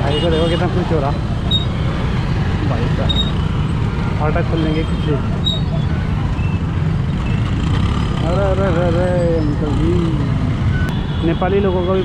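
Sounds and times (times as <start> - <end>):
motorcycle engines rumbling: 0.0 - 12.0.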